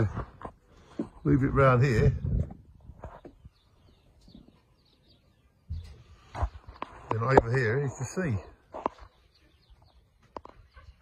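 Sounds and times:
faint bird chirps: 3.0 - 6.8
man speaking: 7.1 - 8.6.

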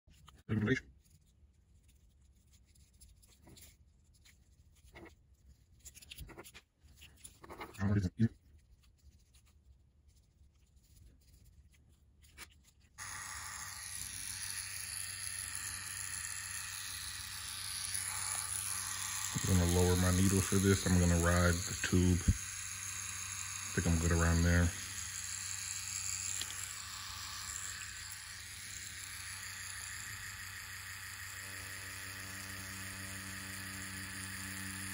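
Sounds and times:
pen scratching on orange peel: 1.8 - 9.7
tattoo machine humming: 13.0 - 34.9.

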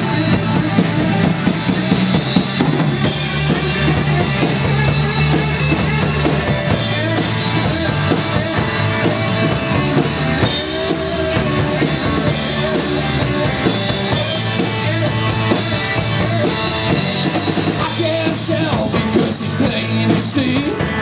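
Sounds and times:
rock band playing: 0.0 - 21.0.

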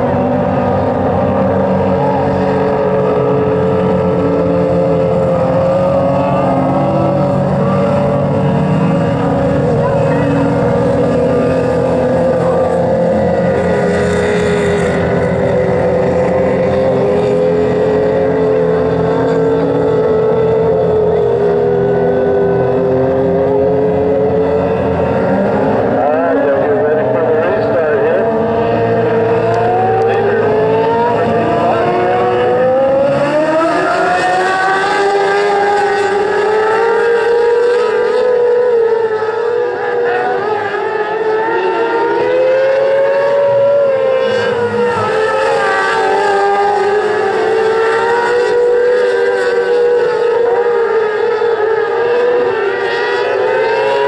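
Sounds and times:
racing car engines revving: 0.0 - 54.0.

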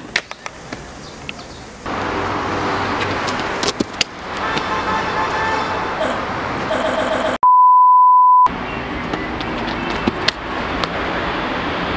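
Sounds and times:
city traffic noise: 0.0 - 7.4, 8.4 - 11.9.

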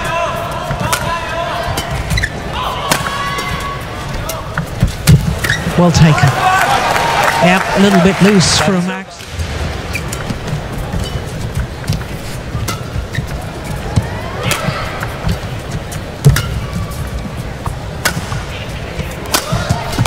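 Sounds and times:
crowd murmur: 5.6 - 20.0
rackets striking shuttlecock: 9.9 - 20.0.

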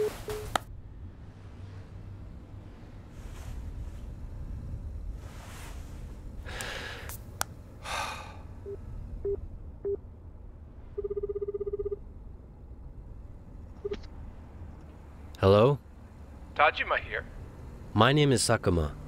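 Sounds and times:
man breathing heavily and sighing: 6.4 - 7.2, 7.8 - 8.6
telephone ringback tone: 11.0 - 12.0.

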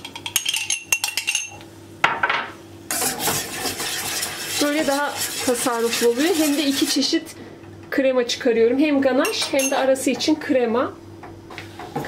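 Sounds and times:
metal spoon scraping saucepan: 2.9 - 7.2.

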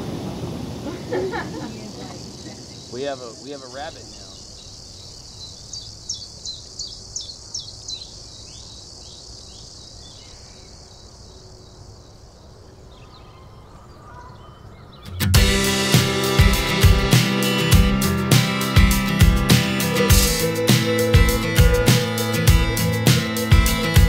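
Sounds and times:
insect drone: 0.0 - 14.2
bird chirps: 1.9 - 11.8, 12.5 - 15.3
song with acoustic guitar and drums: 15.1 - 24.0.

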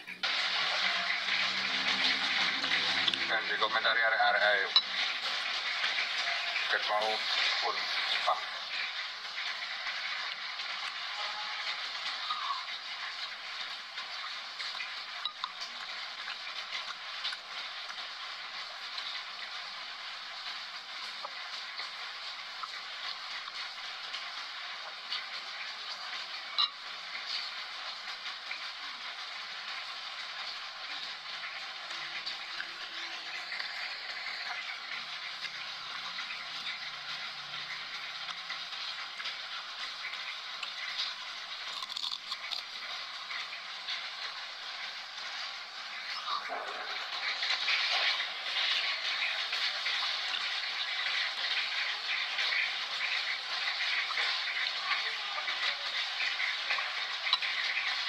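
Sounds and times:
rain falling: 0.0 - 58.0.

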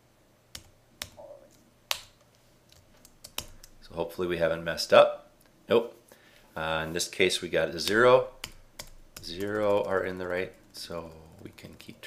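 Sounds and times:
computer keyboard keystrokes: 1.9 - 3.8, 7.8 - 11.9.

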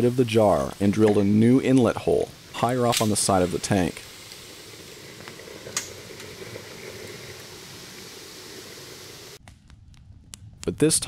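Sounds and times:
steam hissing from a vent: 0.0 - 9.4.

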